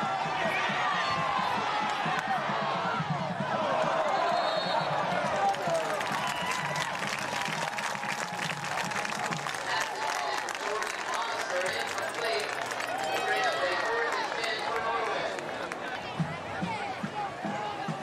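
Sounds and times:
crowd talking and calling out: 0:00.0 - 0:18.0.

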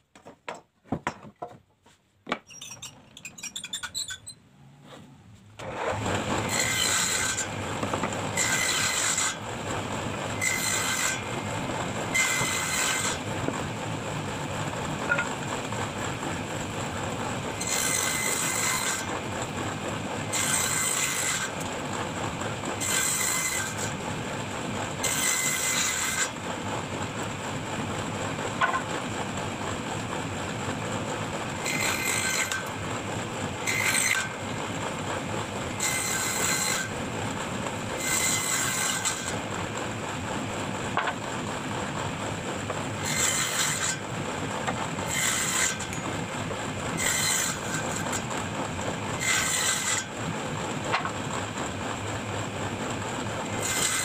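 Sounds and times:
saw blade cutting wood: 0:02.3 - 0:16.8, 0:17.4 - 0:21.8, 0:22.6 - 0:24.0, 0:24.9 - 0:26.4, 0:28.5 - 0:29.0, 0:31.4 - 0:32.9, 0:33.5 - 0:34.6, 0:35.7 - 0:37.1, 0:37.8 - 0:39.8, 0:40.9 - 0:41.4, 0:42.6 - 0:46.2, 0:46.9 - 0:50.2, 0:53.4 - 0:54.0
table saw running: 0:05.6 - 0:54.0.

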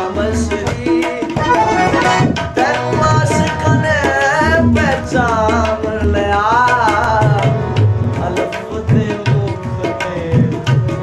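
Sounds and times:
harmonium: 0:00.0 - 0:11.0
man singing: 0:00.0 - 0:11.0.

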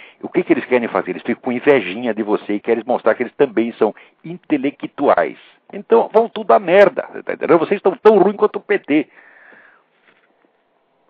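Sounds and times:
man breathing in: 0:00.0 - 0:00.2, 0:09.1 - 0:10.0.

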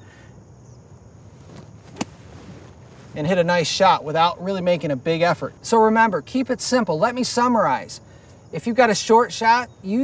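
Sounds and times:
faint outdoor background: 0:00.0 - 0:10.0
golf club striking sand: 0:01.4 - 0:03.2.

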